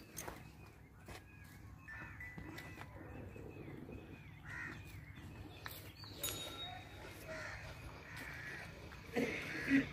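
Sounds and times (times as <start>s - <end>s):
birds raspy calls: 0.0s - 9.9s.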